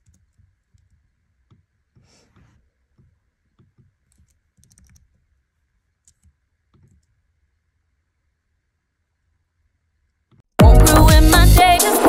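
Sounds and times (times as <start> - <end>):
keyboard key clicks: 3.6 - 5.2.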